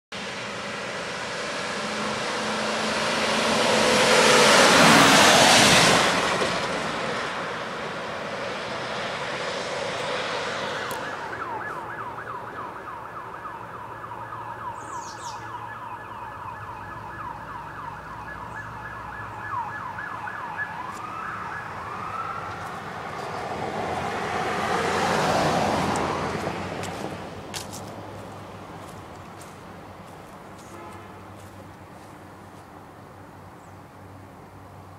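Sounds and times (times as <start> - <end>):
vehicles rushing past: 0.1 - 34.9
siren yelping and wailing: 10.6 - 23.0.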